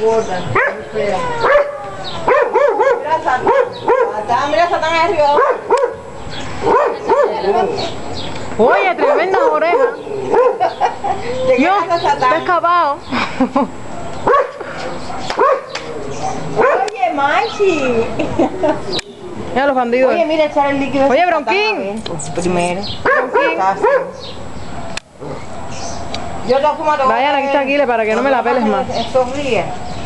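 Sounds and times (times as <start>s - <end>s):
dog barking: 0.5s - 4.3s, 5.3s - 6.0s, 6.6s - 7.9s, 8.7s - 10.9s, 14.0s - 17.0s, 23.0s - 26.5s.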